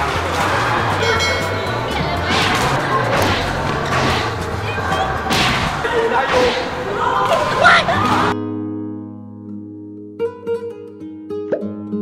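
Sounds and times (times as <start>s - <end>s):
badminton racket hits: 2.2s - 7.4s.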